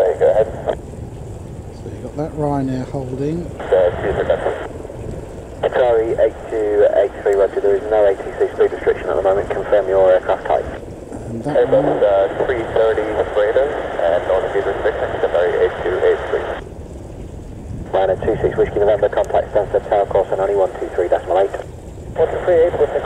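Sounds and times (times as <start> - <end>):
narrow-band radio voices: 0.0 - 0.8, 1.8 - 4.8, 5.6 - 16.6, 17.9 - 23.0.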